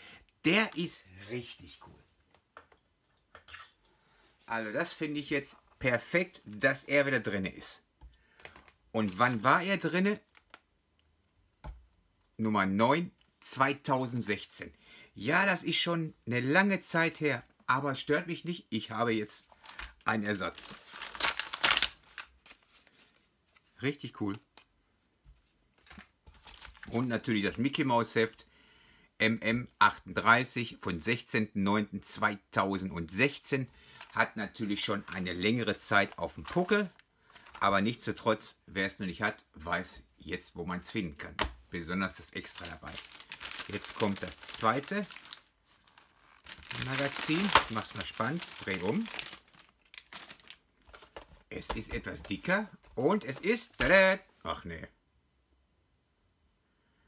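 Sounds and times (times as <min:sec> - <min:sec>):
plastic and paper rustling: 0:08.4 - 0:10.6, 0:19.4 - 0:24.7, 0:25.4 - 0:27.1, 0:33.9 - 0:38.0, 0:42.3 - 0:54.0
plastic foil bag crinkling: 0:20.5 - 0:22.8, 0:42.4 - 0:51.3.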